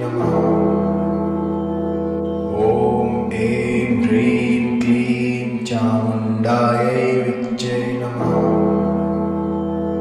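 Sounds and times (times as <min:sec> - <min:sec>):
person chanting: 0:00.0 - 0:01.4, 0:02.5 - 0:09.4
low musical drone: 0:00.0 - 0:10.0.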